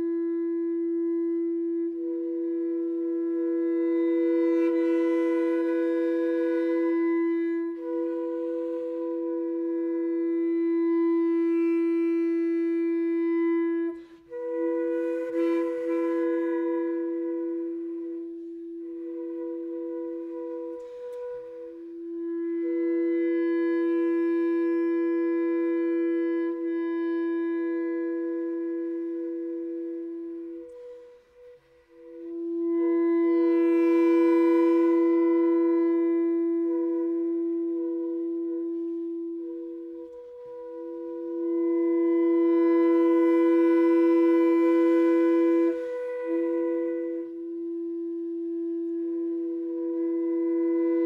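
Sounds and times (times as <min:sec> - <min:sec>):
contrabass clarinet long note: 0:00.0 - 0:51.0.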